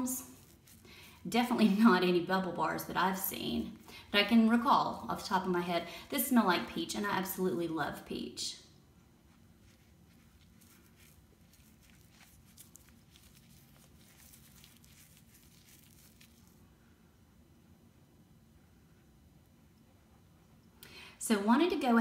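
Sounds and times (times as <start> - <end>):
wet squishing of bubble bar: 0.0 - 2.2, 9.5 - 16.7.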